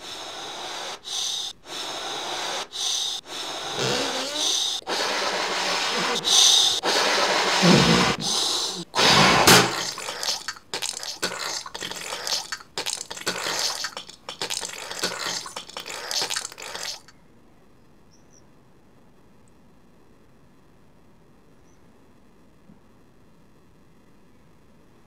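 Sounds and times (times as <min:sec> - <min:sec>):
liquid gushing and sloshing: 0:09.0 - 0:17.1
choppy water splashing: 0:09.2 - 0:17.1.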